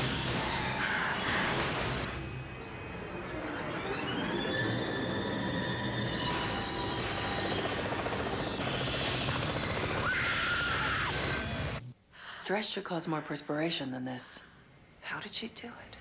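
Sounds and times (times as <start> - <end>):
helicopter whine overhead: 0.0 - 11.8.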